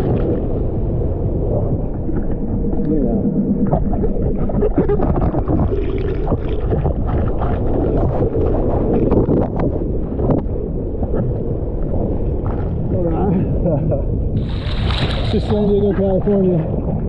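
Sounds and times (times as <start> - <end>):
whitewater churning and splashing: 14.4 - 16.0
man's voice: 15.2 - 16.4.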